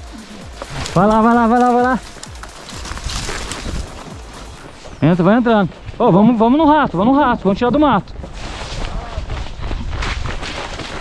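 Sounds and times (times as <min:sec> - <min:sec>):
horse moving through scrub: 0:00.0 - 0:06.7, 0:08.1 - 0:11.0
leaves and branches rustling: 0:00.0 - 0:06.7, 0:07.7 - 0:11.0.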